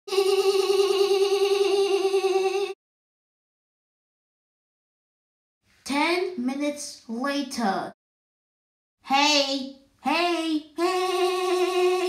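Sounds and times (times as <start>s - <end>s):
gliding vocal sound: 0.1s - 2.8s, 10.8s - 12.0s
high voice singing long note: 10.8s - 12.0s.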